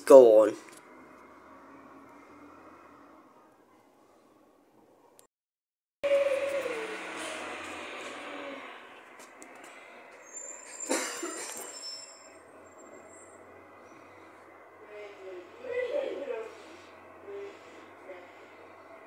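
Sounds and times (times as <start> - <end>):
large vehicle passing: 0.0 - 4.8, 6.0 - 19.0
sharp high squeal: 6.0 - 8.8, 9.9 - 14.0.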